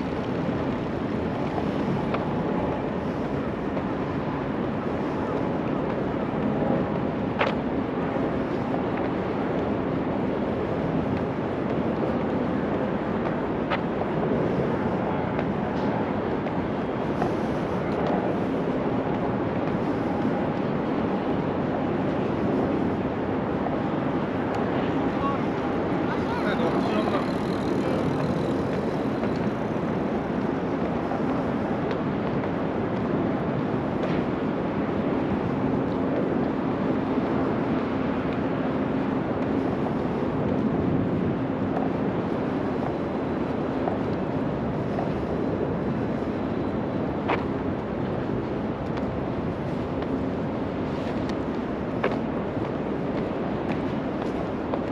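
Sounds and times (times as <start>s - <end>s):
distant traffic hum: 0.0s - 54.9s.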